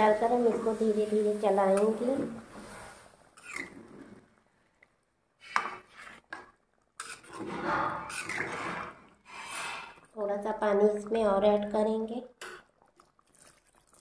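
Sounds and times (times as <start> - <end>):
metal spatula scraping pan: 0.4 - 4.0, 7.0 - 10.0.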